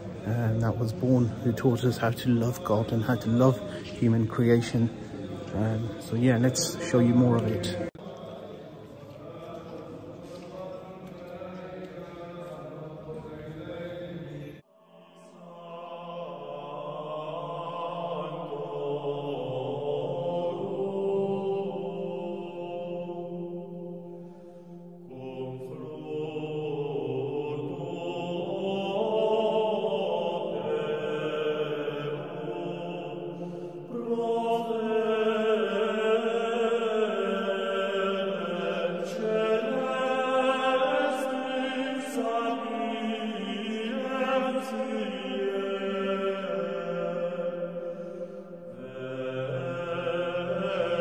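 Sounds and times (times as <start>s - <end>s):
slow chant of held notes: 0.0s - 51.0s.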